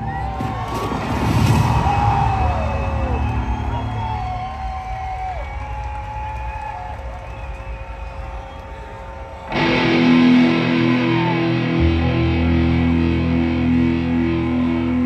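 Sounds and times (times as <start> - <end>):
distorted electric guitar: 9.5 - 15.0
live rock band: 9.5 - 15.0.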